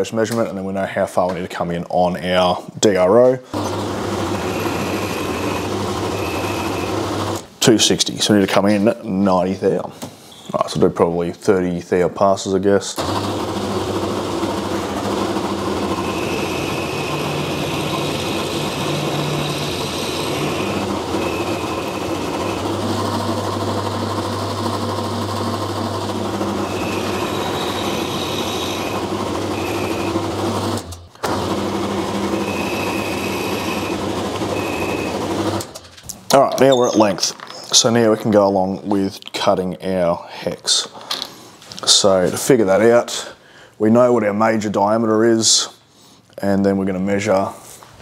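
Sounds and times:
high whine of spindle: 3.6s - 7.4s, 13.0s - 24.7s, 25.4s - 35.7s
milling machine running: 3.6s - 7.5s, 13.0s - 35.8s.

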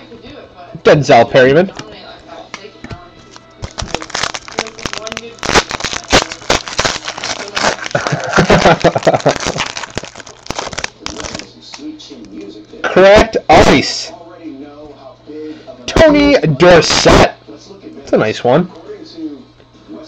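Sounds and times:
foil wrappers crackling and crinkling: 3.2s - 12.6s.

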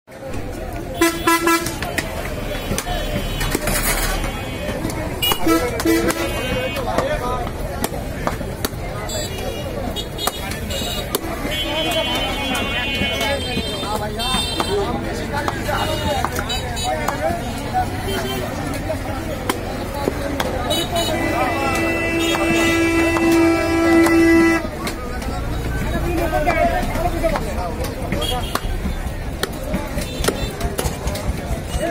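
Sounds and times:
street background with voices: 0.1s - 31.9s
vehicle horn blast: 1.0s - 2.0s, 2.6s - 6.8s, 20.7s - 24.8s
chopping on a wooden block: 14.2s - 17.4s, 19.4s - 20.7s, 27.3s - 31.4s
short horn toots: 20.7s - 24.7s.

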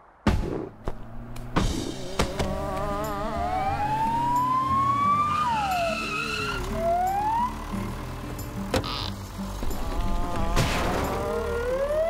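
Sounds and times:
background music: 0.3s - 12.0s
cartoon ambulance siren wailing: 2.5s - 7.6s, 10.0s - 12.0s.

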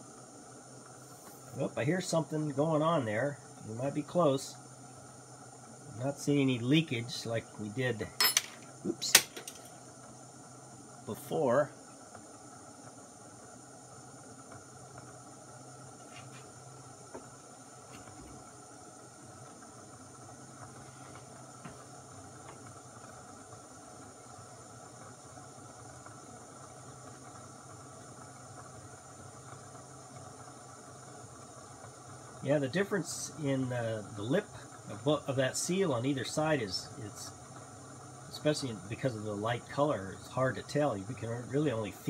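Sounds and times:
gas stove burner hissing: 0.0s - 42.0s
faint ticks from heating metal: 1.7s - 42.0s.

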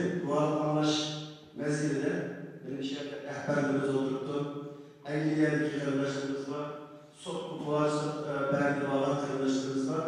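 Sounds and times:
man talking into a microphone: 0.0s - 6.6s, 7.2s - 10.0s.

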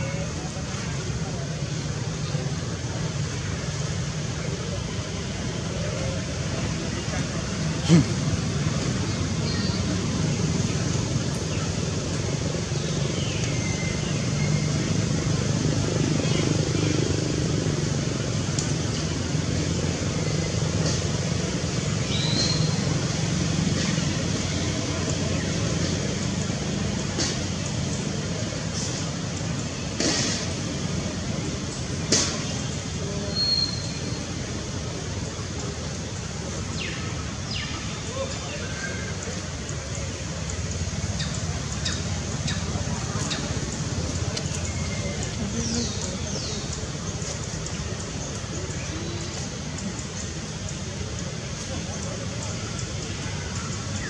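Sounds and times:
distant voices: 0.0s - 54.0s
low outdoor rumble: 0.0s - 54.0s.

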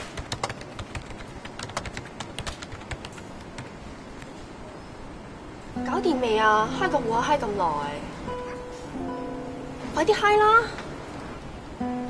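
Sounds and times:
typing on a keyboard: 0.0s - 3.8s.

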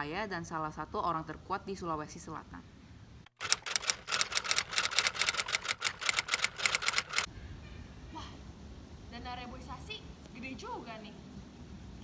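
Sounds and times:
typewriter key clacks: 3.4s - 7.3s.

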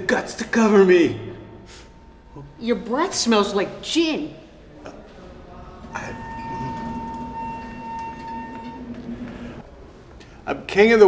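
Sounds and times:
steady low hum: 0.0s - 10.5s
high whine: 0.6s - 9.6s.

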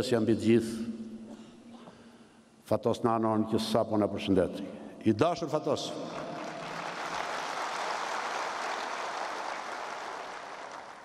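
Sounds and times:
large audience applauding: 6.0s - 11.0s.

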